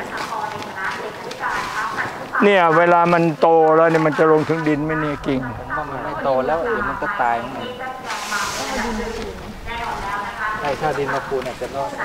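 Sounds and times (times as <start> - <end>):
people talking indistinctly: 0.0 - 12.0
sandal footsteps on pavement: 0.0 - 12.0.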